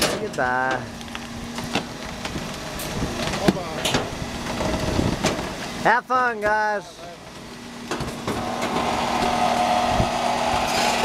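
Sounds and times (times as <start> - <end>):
garbage truck compactor crushing: 0.0 - 5.8
truck engine running: 0.0 - 11.0.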